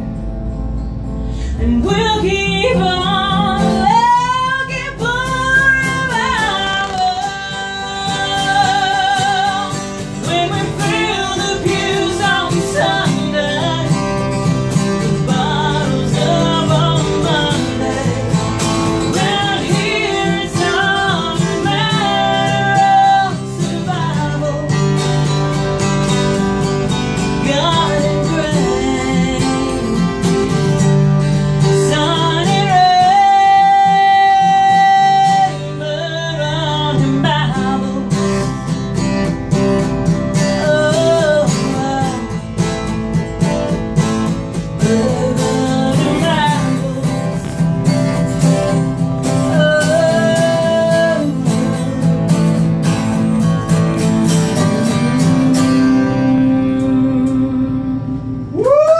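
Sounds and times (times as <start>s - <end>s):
acoustic guitar: 0.0s - 58.9s
woman singing country song: 0.8s - 58.9s.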